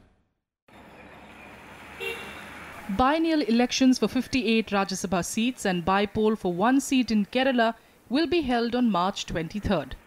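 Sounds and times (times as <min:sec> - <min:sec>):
road traffic hum: 0:00.1 - 0:10.0
car horn toot: 0:02.0 - 0:02.6.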